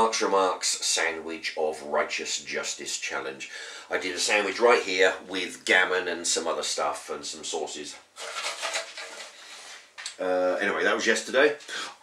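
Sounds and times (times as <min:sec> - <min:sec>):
soft uneven hiss: 0:00.0 - 0:12.0.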